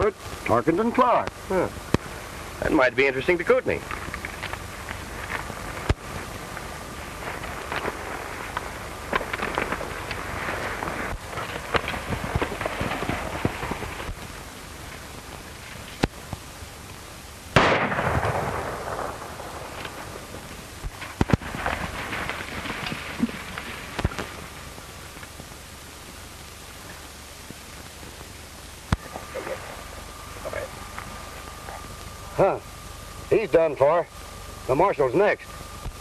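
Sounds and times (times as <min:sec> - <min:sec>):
film soundtrack hiss: 0:00.0 - 0:36.0
gunshots with echo: 0:17.6 - 0:19.7.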